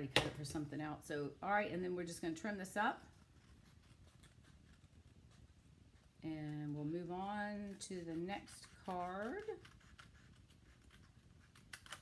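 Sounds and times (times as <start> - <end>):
scissors snipping paper: 6.4 - 12.0.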